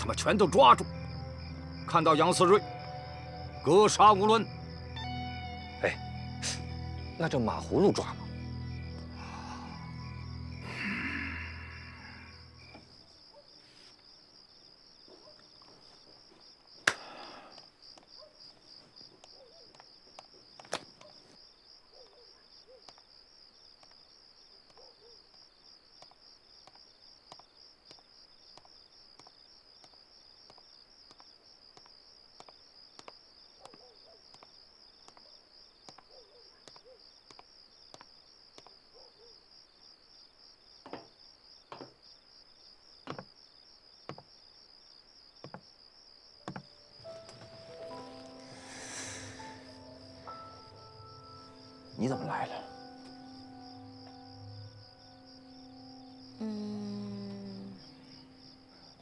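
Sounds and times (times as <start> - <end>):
crickets chirping: 0.0 - 59.0
soft knocks: 46.4 - 46.7.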